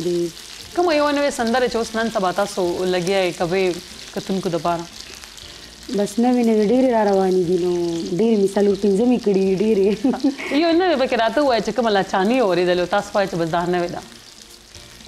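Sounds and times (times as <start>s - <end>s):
woman talking: 0.0s - 4.9s, 5.9s - 14.1s.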